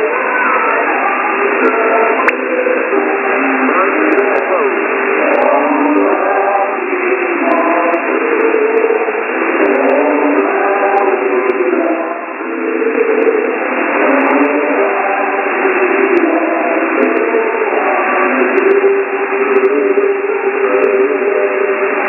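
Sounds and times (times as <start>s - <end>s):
static hiss: 0.0s - 22.0s
thin radio music: 0.0s - 22.0s.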